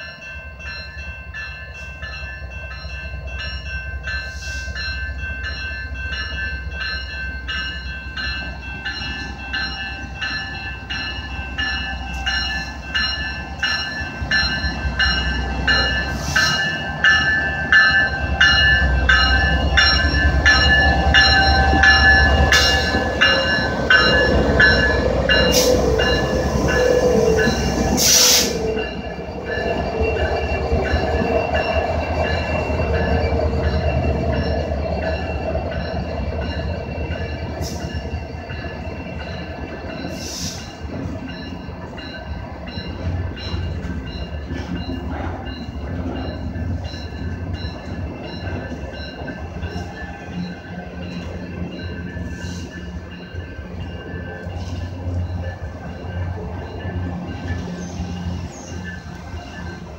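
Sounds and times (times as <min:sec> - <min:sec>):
railroad crossing bell ringing: 0:00.0 - 0:59.9.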